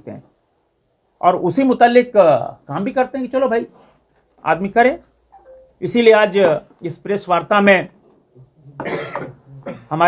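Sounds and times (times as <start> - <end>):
man speaking: 5.7 - 8.9
person coughing: 8.8 - 10.0.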